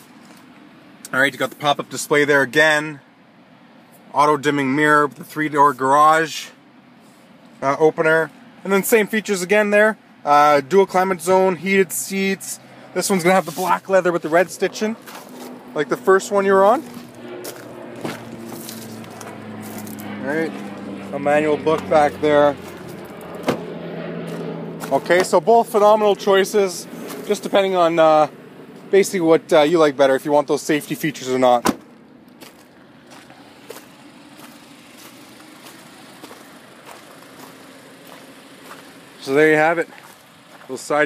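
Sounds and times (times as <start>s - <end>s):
steady low hum: 0.0s - 41.0s
footsteps on gravel: 13.3s - 15.7s, 16.7s - 21.1s, 21.7s - 25.4s, 26.9s - 27.5s, 31.7s - 39.2s, 39.8s - 40.9s.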